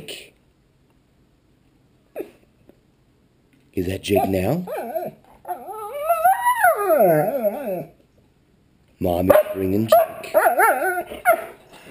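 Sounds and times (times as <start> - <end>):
large dog howling: 4.7 - 8.0.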